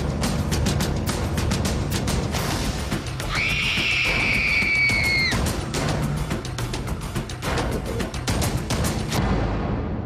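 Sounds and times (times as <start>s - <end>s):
tense music with percussive hits: 0.0s - 10.0s
girl screaming: 3.3s - 5.4s.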